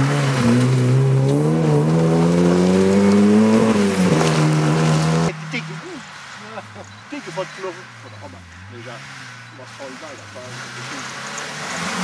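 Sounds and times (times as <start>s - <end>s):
rally car engine revving: 0.0s - 12.0s
spectators talking: 5.3s - 11.1s.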